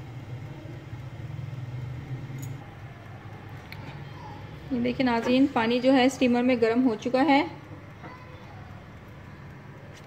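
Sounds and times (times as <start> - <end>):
food steamer humming: 0.0 - 10.0.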